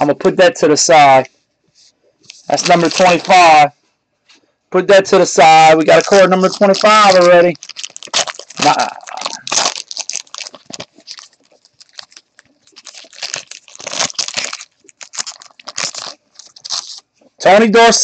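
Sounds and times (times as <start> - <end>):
plastic wrapper crinkling: 2.2 - 3.7, 5.5 - 17.4.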